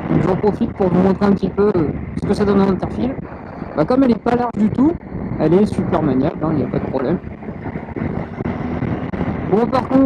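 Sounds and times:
motorcycle engine running: 0.0 - 10.0
wind rush: 0.0 - 10.0.

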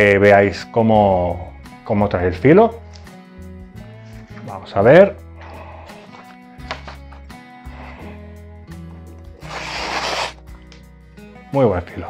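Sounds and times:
background music: 0.0 - 12.0
knife slicing paper: 9.4 - 10.4.

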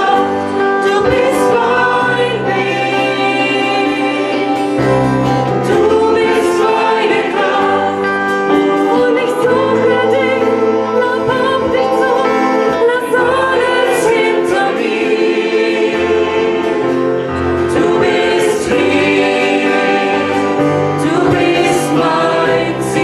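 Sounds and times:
mixed choir singing: 0.0 - 23.0.

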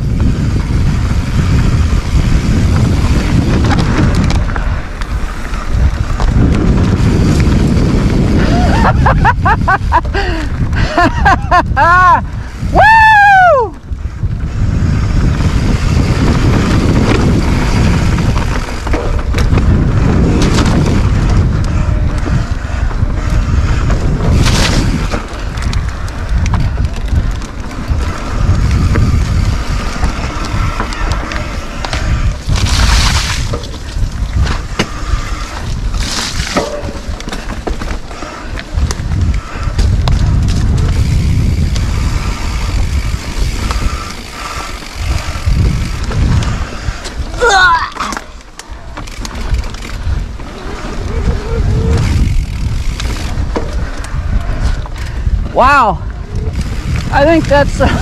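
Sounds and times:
tyres rolling over dirt and rocks: 0.0 - 11.4, 14.2 - 55.4
wind rumbling on microphone: 0.0 - 58.0.

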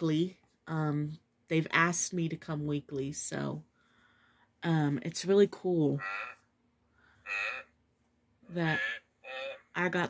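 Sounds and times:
recorded animal grunt from toy: 7.2 - 7.7, 8.7 - 9.6.

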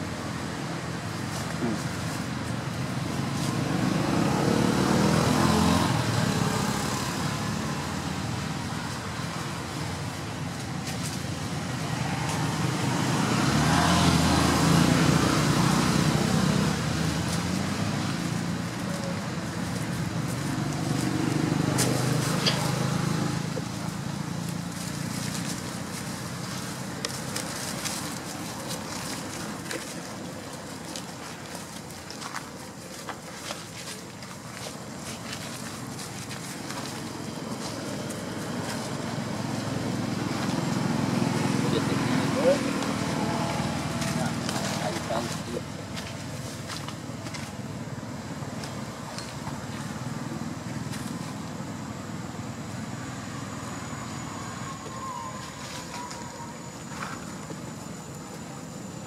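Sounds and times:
traffic passing: 0.0 - 59.0.

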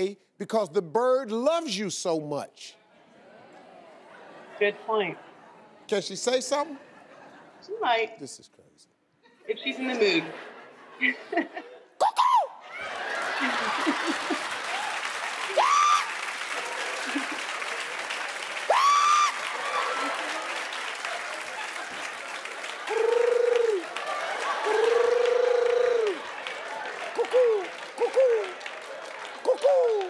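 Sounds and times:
audience applause: 12.6 - 30.0.

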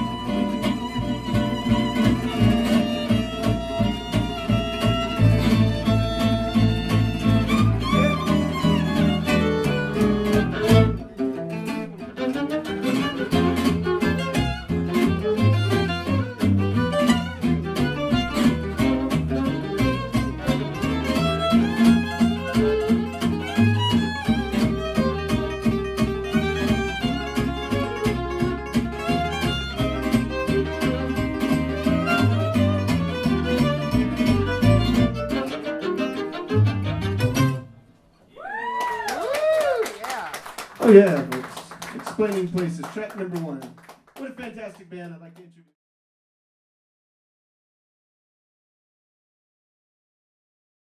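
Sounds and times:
gypsy jazz string band: 0.0 - 38.0, 40.5 - 44.7.

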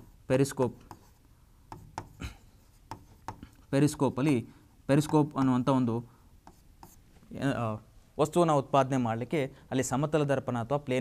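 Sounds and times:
pen tapping and scraping on board: 0.8 - 3.6, 4.9 - 5.6, 6.4 - 7.0.

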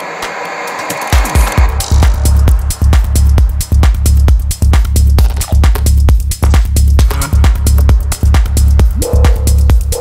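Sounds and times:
kick drum: 1.2 - 10.0
rolling bassline: 1.6 - 10.0.

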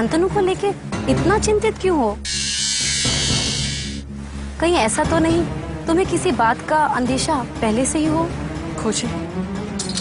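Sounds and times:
low background music drone: 0.0 - 10.0
hiss-like sound effect: 2.3 - 4.0.

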